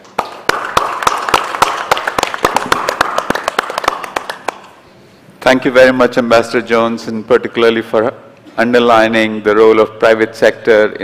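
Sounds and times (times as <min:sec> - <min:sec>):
audience applauding: 0:00.2 - 0:04.7.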